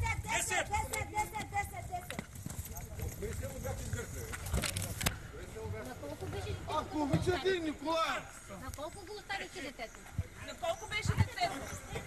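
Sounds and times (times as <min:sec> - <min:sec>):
footsteps on pavement: 0:00.0 - 0:07.5.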